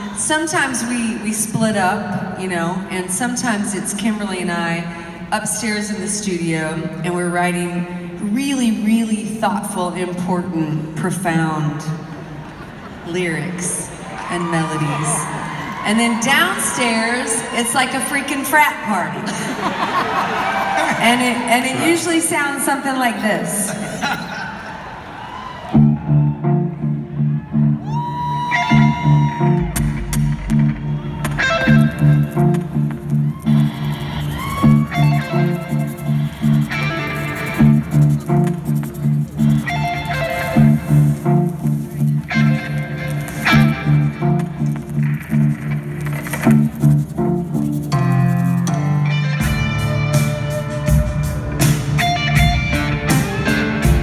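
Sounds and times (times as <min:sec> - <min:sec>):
drums: 0:25.6 - 0:54.0
electric guitar riff: 0:28.5 - 0:46.8.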